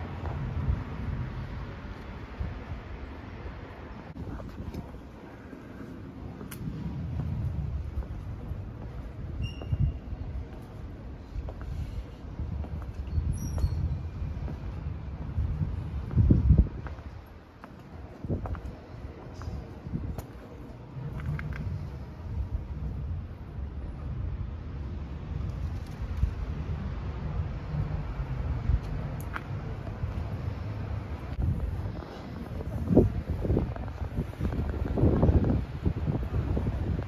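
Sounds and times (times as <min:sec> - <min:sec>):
city traffic: 0:00.0 - 0:37.0
wind buffeting microphone: 0:00.0 - 0:37.0.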